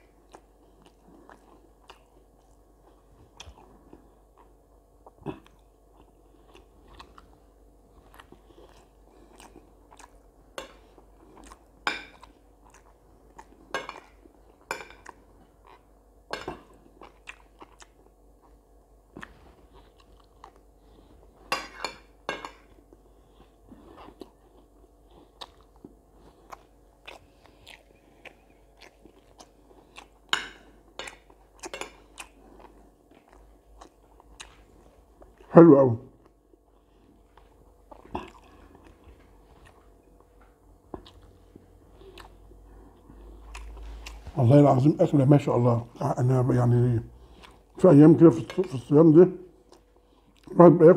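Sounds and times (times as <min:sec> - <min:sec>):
person chewing: 0:00.0 - 0:35.5, 0:36.2 - 0:44.4, 0:47.2 - 0:48.9, 0:49.5 - 0:50.6.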